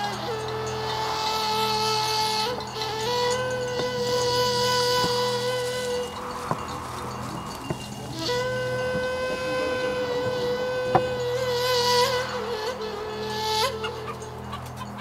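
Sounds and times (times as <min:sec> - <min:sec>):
low drone: 0:00.0 - 0:15.0
film score high held note: 0:03.4 - 0:14.5.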